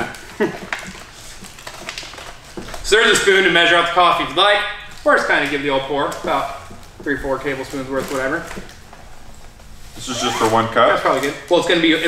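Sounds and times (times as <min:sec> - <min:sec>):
paper bag crinkling: 0:00.0 - 0:08.8, 0:09.9 - 0:11.7.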